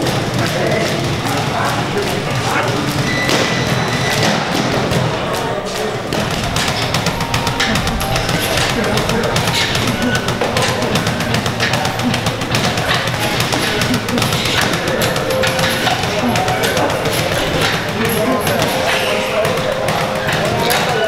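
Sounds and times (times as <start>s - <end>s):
background voices: 5.1s - 21.0s
music: 6.1s - 21.0s
training thuds and taps: 6.1s - 21.0s.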